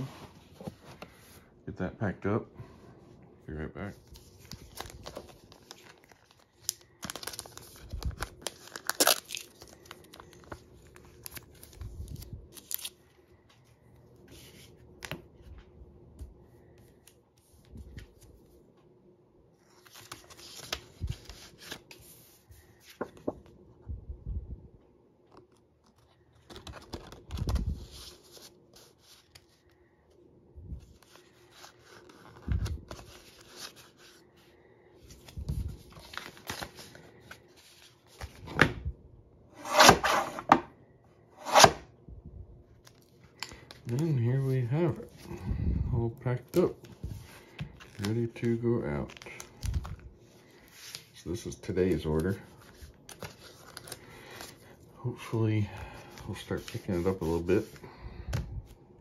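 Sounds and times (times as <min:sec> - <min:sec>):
plastic sleeve crinkling: 0:04.1 - 0:13.0
paper rustling and sliding: 0:55.6 - 0:57.8.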